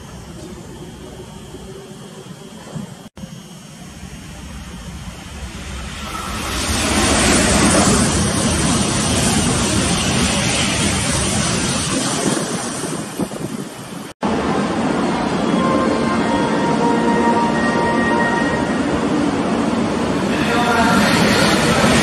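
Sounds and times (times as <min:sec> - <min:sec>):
high-speed train rushing past: 0:00.0 - 0:22.0.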